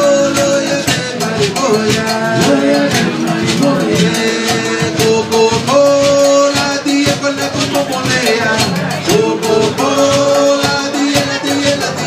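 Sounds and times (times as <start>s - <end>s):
live band latin music: 0.0s - 12.0s.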